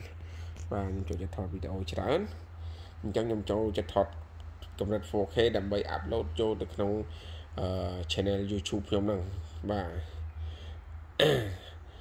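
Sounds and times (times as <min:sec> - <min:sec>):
steady low hum: 0:00.0 - 0:12.0
man clearing his throat: 0:11.2 - 0:11.8.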